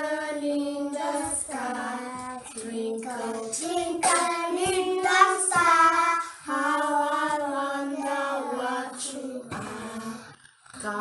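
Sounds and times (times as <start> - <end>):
children singing together: 0.0 - 11.0.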